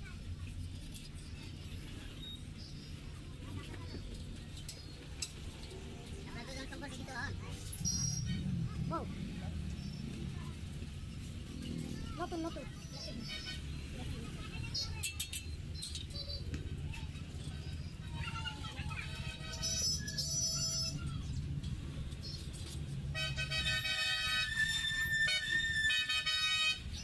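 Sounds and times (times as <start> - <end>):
street traffic rumble: 0.0 - 27.0
vehicle horns honking: 19.0 - 21.0, 23.1 - 27.0.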